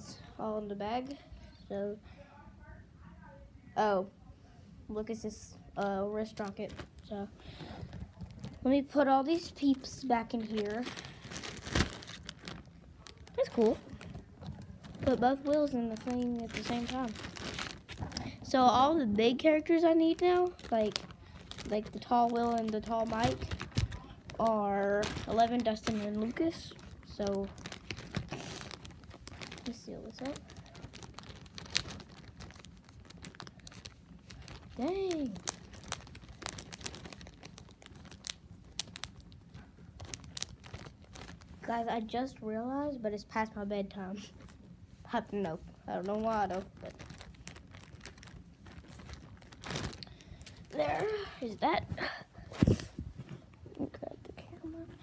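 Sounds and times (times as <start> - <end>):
plastic bag crinkling: 5.8 - 42.2, 43.8 - 55.0.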